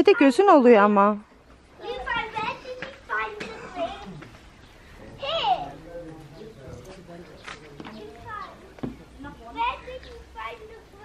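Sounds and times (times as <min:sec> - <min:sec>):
child talking: 0:01.8 - 0:04.3, 0:05.2 - 0:05.8, 0:08.0 - 0:08.6, 0:09.4 - 0:11.0.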